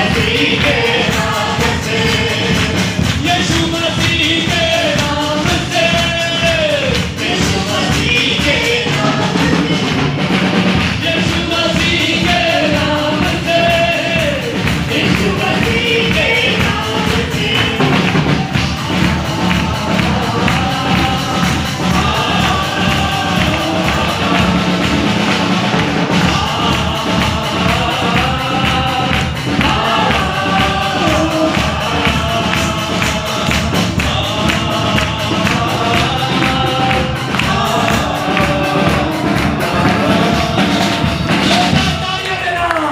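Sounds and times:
band with drums and guitar: 0.0 - 42.9
congregation singing worship song: 0.0 - 42.9
hand-clapping: 0.0 - 42.9
lead singer on microphone: 0.0 - 42.9.

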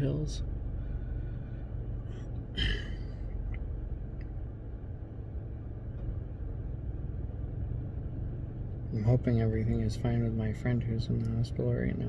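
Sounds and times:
car air conditioning rumble: 0.0 - 12.0.

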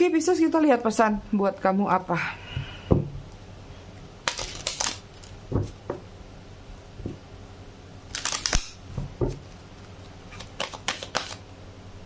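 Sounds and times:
cards being shuffled by hand: 8.1 - 11.4.

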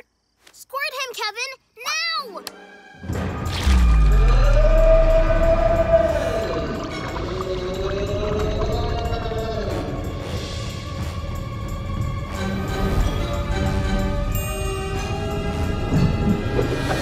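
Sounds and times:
background music: 1.9 - 17.0
deep rumble: 3.4 - 12.3.

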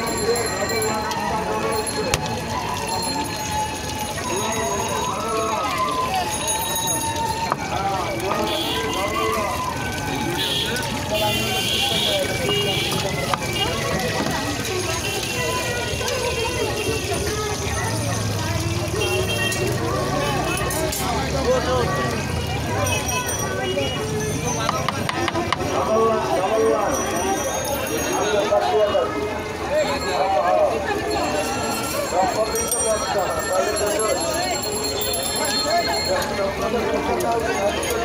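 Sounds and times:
background voices talking: 0.0 - 38.0
low traffic rumble: 0.0 - 38.0.

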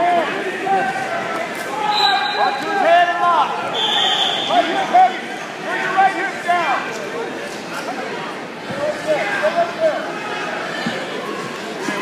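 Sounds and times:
voices shouting in a hall: 0.0 - 12.0.

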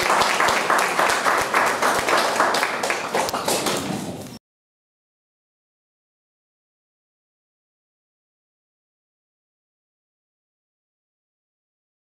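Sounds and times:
crowd applauding: 0.0 - 4.2.

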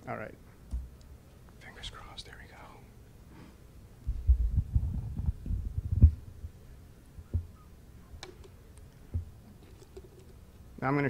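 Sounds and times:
low thuds and rumble: 4.1 - 6.5.

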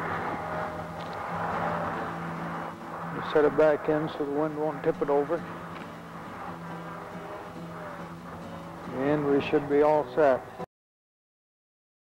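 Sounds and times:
steady low hum: 0.0 - 10.7.

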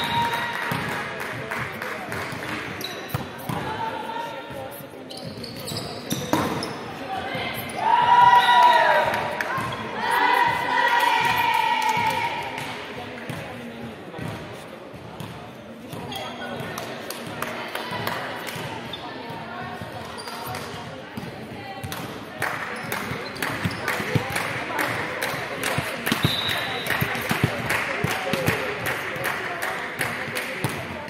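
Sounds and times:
sneaker squeaks: 2.7 - 3.6, 4.7 - 8.7, 15.2 - 16.8, 18.6 - 21.3, 22.7 - 24.3, 26.1 - 27.3.

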